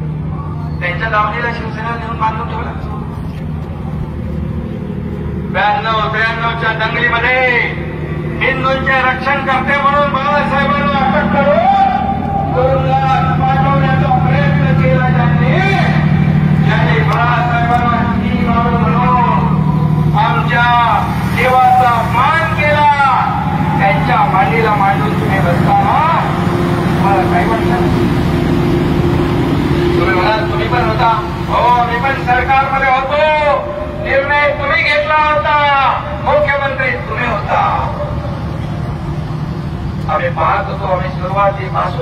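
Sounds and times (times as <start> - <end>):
low hum and rumble of crowd: 0.0 - 42.0
rally speech over loudspeakers: 0.6 - 3.2, 8.4 - 28.3, 29.8 - 38.3.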